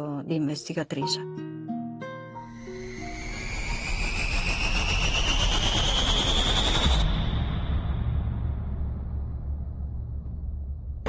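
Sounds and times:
soft plucked music notes: 0:00.2 - 0:02.5
rising whoosh with climbing whine: 0:02.5 - 0:10.0
low rumble: 0:02.6 - 0:11.0.

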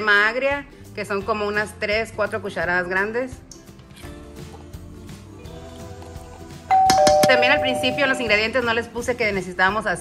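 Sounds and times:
soft background music: 0:00.0 - 0:10.0
two-note ding-dong chime: 0:06.7 - 0:08.5.

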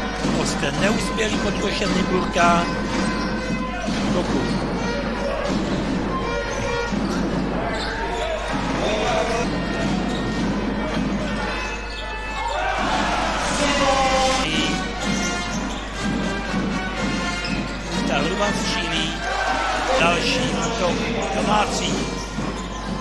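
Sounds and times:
arena music: 0:00.0 - 0:23.0
voices in a hall: 0:00.0 - 0:23.0
basketball bouncing on hardwood: 0:02.6 - 0:08.9.

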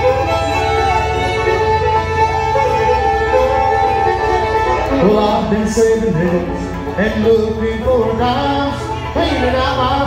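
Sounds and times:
bluegrass band playing: 0:00.0 - 0:10.0
fiddle melody: 0:00.0 - 0:10.0.

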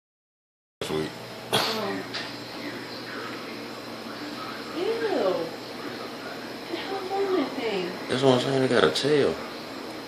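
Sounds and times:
person coughing: 0:01.5 - 0:02.0.

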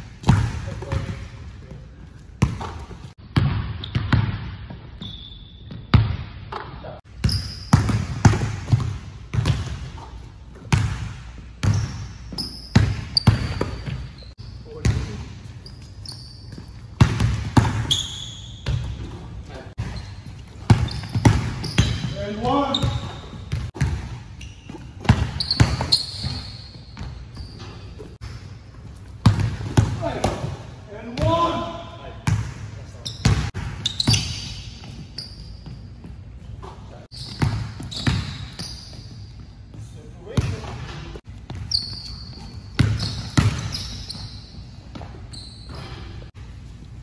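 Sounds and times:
basketballs bouncing on gym floor: 0:00.0 - 0:46.0
basketball bouncing on hardwood: 0:07.2 - 0:10.0, 0:29.2 - 0:30.4.

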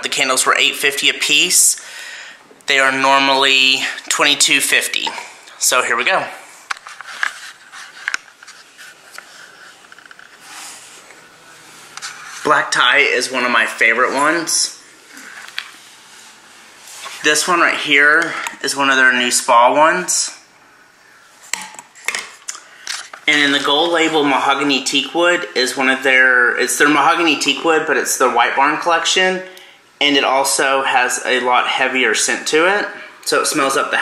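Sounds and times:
rustling handling noise: 0:06.5 - 0:12.8.

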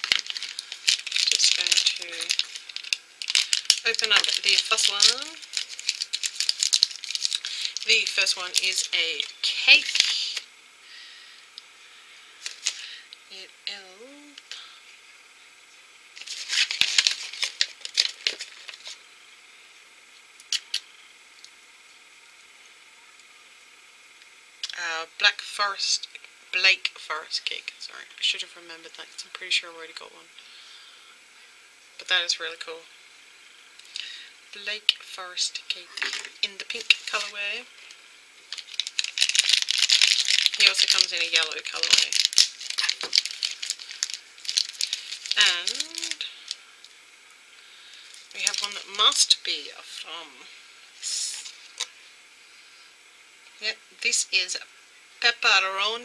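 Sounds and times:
plastic packaging crinkling: 0:00.0 - 0:10.4, 0:12.4 - 0:13.0, 0:16.2 - 0:19.0, 0:35.9 - 0:47.0, 0:47.9 - 0:49.3.

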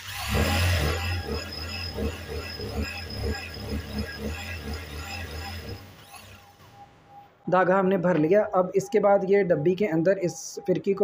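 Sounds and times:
sewing machine humming: 0:00.0 - 0:07.2.

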